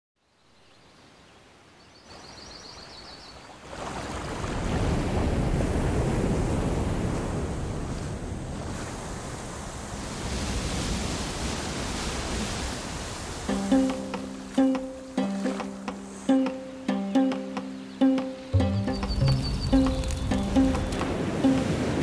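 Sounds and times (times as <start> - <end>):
waterfall roaring: 13.4 - 22.0
faint high chirping: 16.2 - 21.0.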